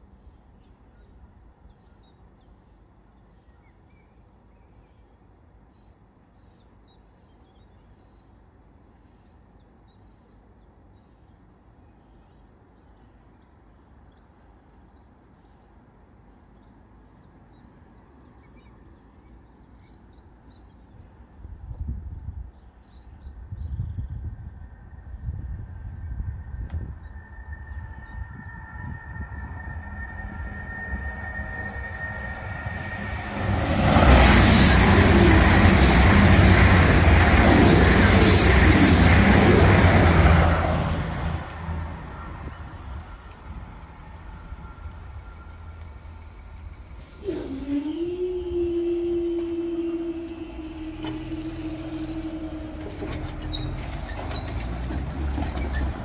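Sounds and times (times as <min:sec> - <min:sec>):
train passing at speed: 0:23.2 - 0:56.0
high ringing from rails: 0:26.2 - 0:47.0
motor whine: 0:41.5 - 0:54.0.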